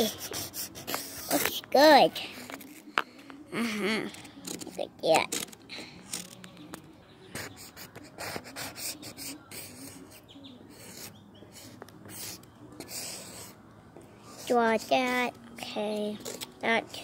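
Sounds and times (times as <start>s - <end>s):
marker scribbling on wood: 0.0s - 1.9s, 7.3s - 13.6s
child's voice: 1.3s - 2.4s, 3.8s - 5.4s, 14.4s - 17.0s.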